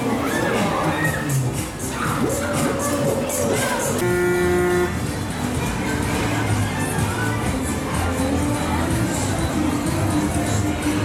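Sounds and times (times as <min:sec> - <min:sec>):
fairground music: 0:00.0 - 0:11.0
horn toot: 0:04.0 - 0:05.1.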